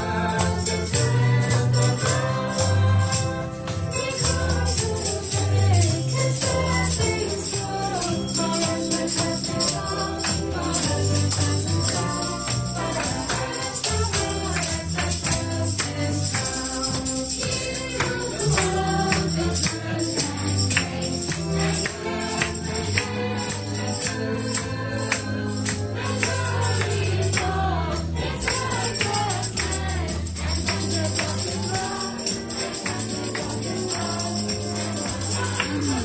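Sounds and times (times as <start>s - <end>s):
choir singing gospel: 0.0s - 36.0s
tambourine shaking: 0.0s - 36.0s.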